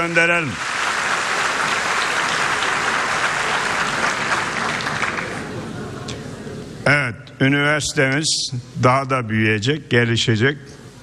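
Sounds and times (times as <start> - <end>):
audience applauding: 0.0 - 5.8.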